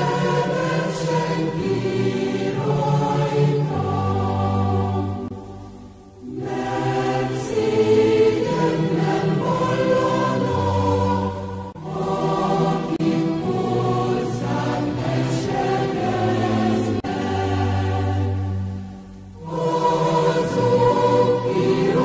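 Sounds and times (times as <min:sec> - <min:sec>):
choir singing slow phrases: 0:00.0 - 0:22.0.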